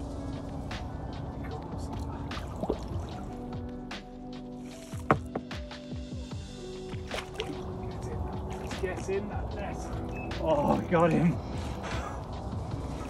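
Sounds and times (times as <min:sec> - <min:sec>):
music with long held notes: 0:00.0 - 0:13.0
water splashing and sloshing: 0:00.0 - 0:13.0.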